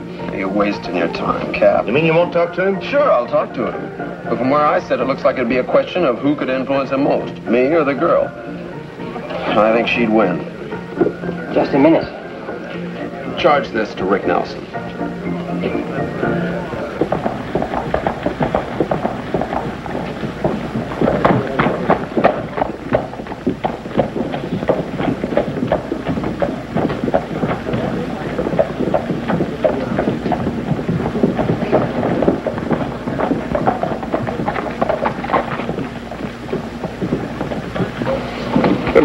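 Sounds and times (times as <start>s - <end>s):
indistinct background voices: 0.0s - 39.0s
continuous clatter of knocks: 16.8s - 39.0s.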